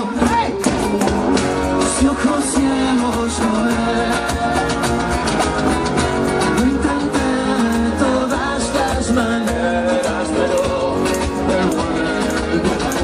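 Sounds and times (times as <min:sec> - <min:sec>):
person singing: 0:00.0 - 0:05.8, 0:06.4 - 0:13.0
cajon and cymbal beat: 0:00.0 - 0:13.0
strummed guitars: 0:00.0 - 0:13.0.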